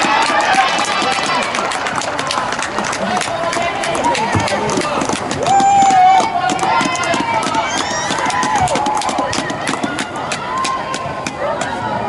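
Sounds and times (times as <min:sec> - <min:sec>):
running footsteps: 0:00.0 - 0:11.9
players shouting: 0:00.0 - 0:12.0.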